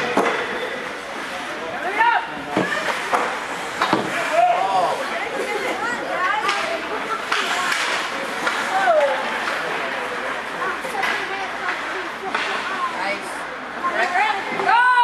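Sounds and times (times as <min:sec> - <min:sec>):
hockey sticks and puck knocking: 0:02.6 - 0:04.3, 0:06.3 - 0:12.8
people shouting: 0:04.1 - 0:05.0, 0:14.7 - 0:15.0.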